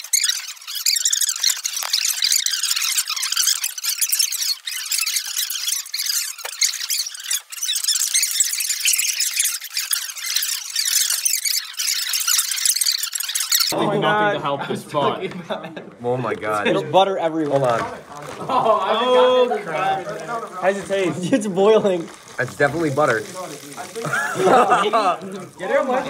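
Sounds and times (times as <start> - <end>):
sped-up squeaky chatter: 0.0 - 13.8, 18.1 - 26.0.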